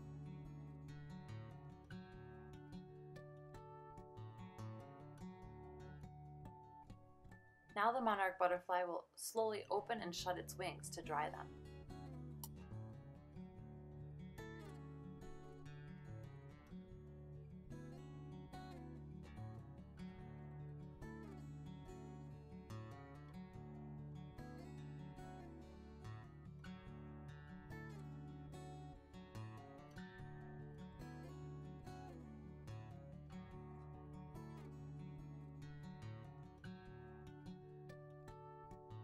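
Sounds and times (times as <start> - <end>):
acoustic guitar strumming: 0.0 - 39.0.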